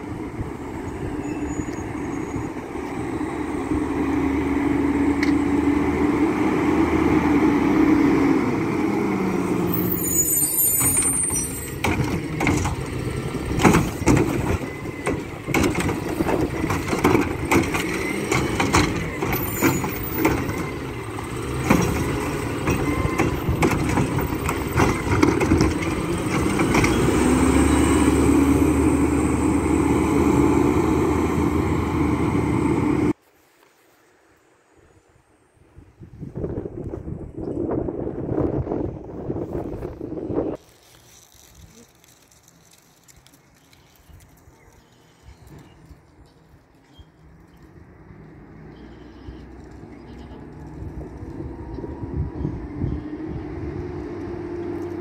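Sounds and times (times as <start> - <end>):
garbage truck engine running: 0.1 - 33.1
air brakes hissing: 9.7 - 11.8.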